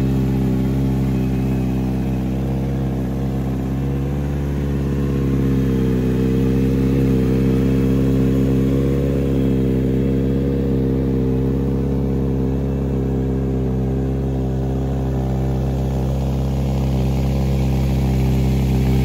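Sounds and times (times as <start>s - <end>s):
motorcycle engine idling: 0.0s - 19.0s.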